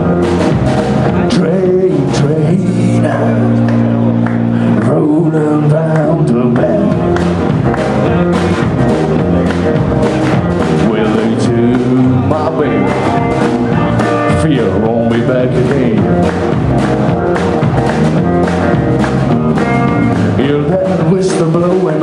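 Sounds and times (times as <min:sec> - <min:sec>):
drum kit: 0:00.0 - 0:22.0
electric bass: 0:00.0 - 0:22.0
electric guitar: 0:00.0 - 0:22.0.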